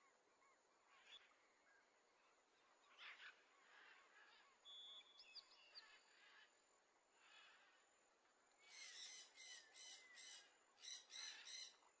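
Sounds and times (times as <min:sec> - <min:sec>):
faint bird calls: 0:08.6 - 0:12.0.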